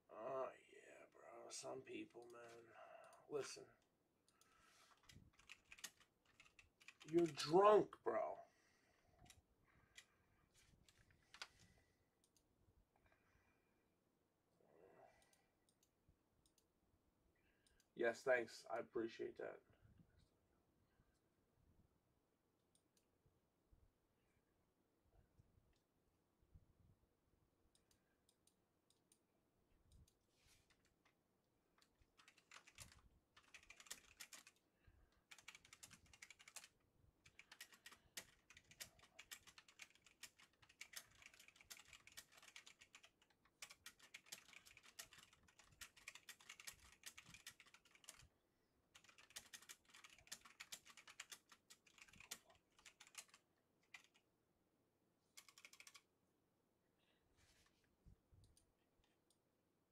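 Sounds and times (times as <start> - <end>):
faint keyboard typing: 1.6 - 8.3, 9.0 - 13.5, 29.8 - 48.3, 48.9 - 54.3, 55.3 - 56.1.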